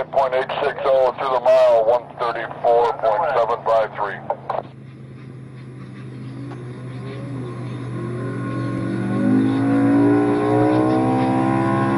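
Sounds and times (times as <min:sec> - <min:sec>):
race car engine accelerating: 0:00.0 - 0:11.9.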